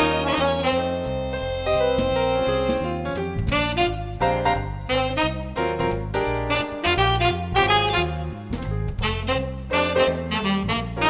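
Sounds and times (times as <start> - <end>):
jazz piano: 0.0 - 11.0
walking bass line: 0.0 - 11.0
wind instrument melody: 0.0 - 11.0.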